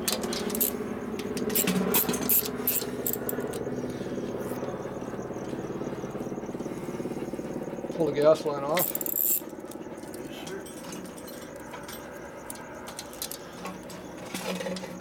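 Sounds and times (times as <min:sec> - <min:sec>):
steady background hum: 0:00.0 - 0:15.0
metal clinking: 0:00.1 - 0:00.8, 0:01.4 - 0:03.6, 0:08.8 - 0:13.4
ratchet and wrench clicking: 0:00.1 - 0:00.8, 0:01.4 - 0:03.6, 0:08.8 - 0:09.5
faint regular ticking: 0:00.2 - 0:04.0.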